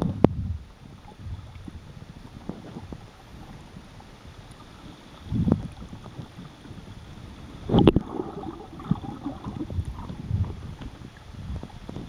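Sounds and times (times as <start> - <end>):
low underwater rumbles: 0.0 - 12.0
underwater sloshing and gurgling: 0.0 - 12.0.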